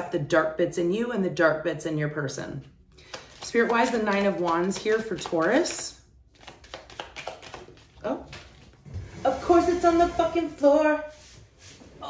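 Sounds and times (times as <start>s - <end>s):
cards being shuffled: 3.0s - 8.8s.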